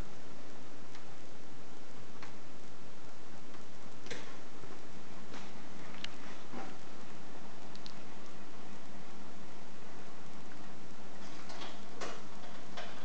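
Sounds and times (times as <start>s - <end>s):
steady hiss: 0.0s - 13.0s.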